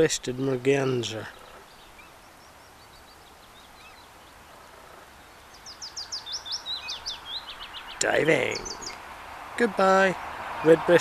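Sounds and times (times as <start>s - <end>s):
bird chirping: 0.0s - 11.0s
faint outdoor hiss: 0.0s - 11.0s.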